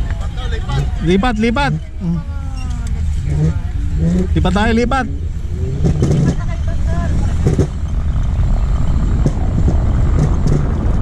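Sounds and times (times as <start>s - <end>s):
people's voices: 0.0s - 10.7s
wind buffeting microphone: 0.0s - 11.0s.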